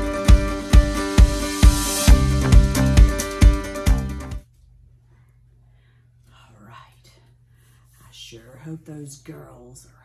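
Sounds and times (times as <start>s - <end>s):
low steady hum: 4.4s - 10.0s
woman whispering: 6.3s - 10.0s.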